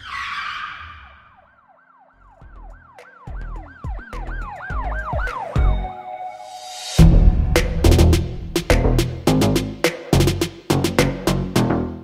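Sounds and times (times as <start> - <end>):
siren-like wail sweeps: 0.0 - 8.4
whoosh: 6.5 - 9.3
deep bass hits: 7.0 - 11.1.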